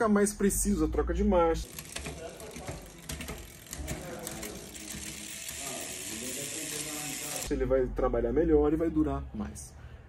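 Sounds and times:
bike drivetrain ratcheting clicks: 1.6s - 7.5s.

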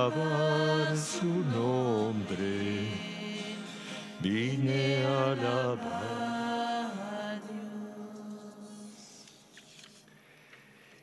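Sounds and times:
man singing slow chant-like melody: 0.0s - 6.4s.

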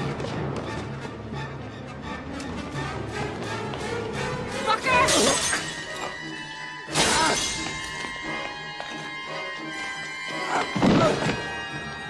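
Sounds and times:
tense orchestral music: 0.0s - 12.0s.

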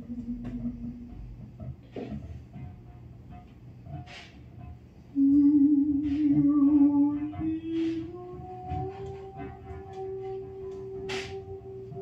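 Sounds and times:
woman singing long low note: 0.0s - 1.4s, 5.1s - 12.0s.

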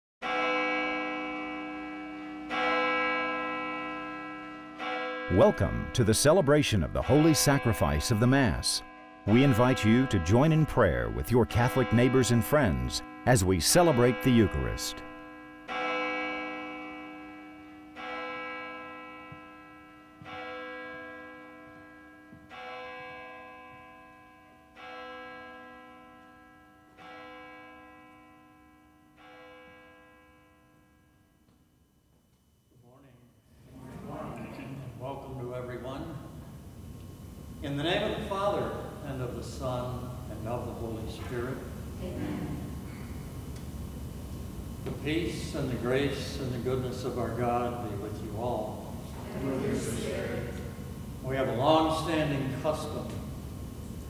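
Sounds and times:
church bell ringing: 0.2s - 31.4s, 38.0s - 41.8s, 44.7s - 49.0s, 50.4s - 53.2s
bell ringing: 1.6s - 17.3s.

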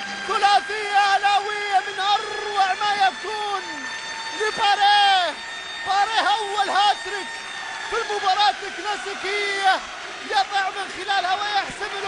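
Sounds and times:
commentator shouting excitedly: 0.2s - 7.3s, 7.9s - 12.0s.

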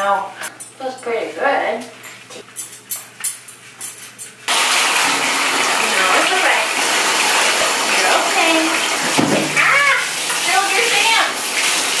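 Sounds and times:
water pouring into bathtub: 4.5s - 12.0s.

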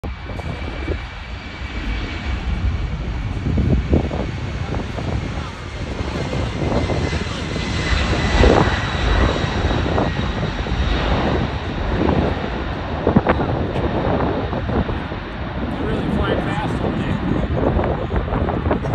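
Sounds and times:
high jet whine: 0.0s - 18.9s
jet engines rumbling: 0.0s - 18.9s.

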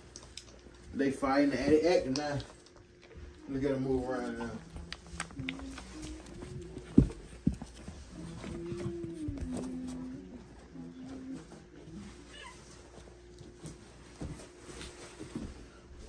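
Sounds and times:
puppies whining and squeaking: 7.7s - 13.1s.

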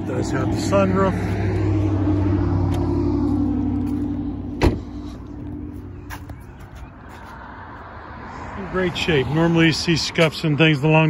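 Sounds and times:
low vehicle hum: 0.0s - 11.0s
loud thump: 4.6s - 4.9s.

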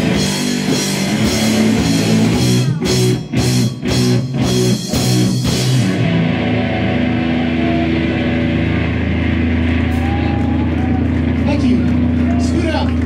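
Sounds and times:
electric guitar amplifier drone: 0.0s - 13.0s
crowd voices: 0.4s - 3.9s, 6.1s - 13.0s.

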